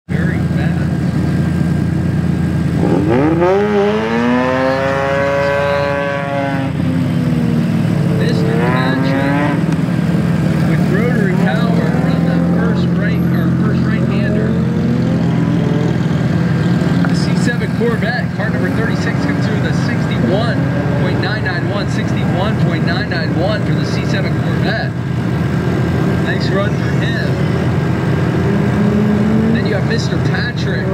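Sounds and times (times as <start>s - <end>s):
rotary engine revving: 0.2s - 30.9s.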